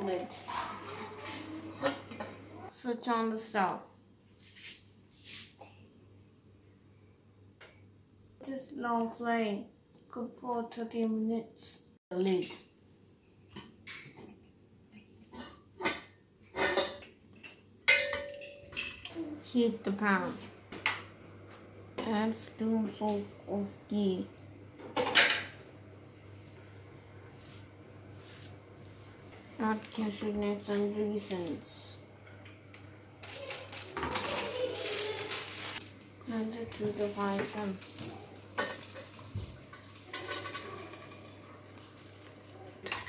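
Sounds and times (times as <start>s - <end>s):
ghee sizzling: 30.6s - 43.0s
nuts clattering into pan: 33.2s - 36.0s, 36.7s - 43.0s.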